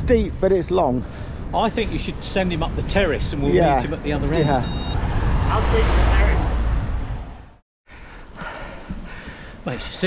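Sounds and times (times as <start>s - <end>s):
wind buffeting microphone: 0.0s - 7.6s.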